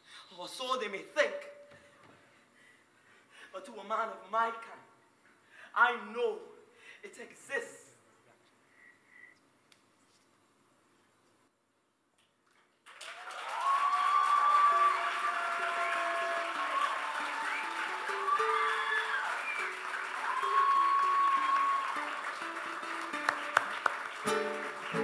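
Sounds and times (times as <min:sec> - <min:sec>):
audience applause and cheering: 0:12.8 - 0:25.0
whoops or whistles: 0:13.4 - 0:22.1
guitar melody: 0:22.4 - 0:25.0.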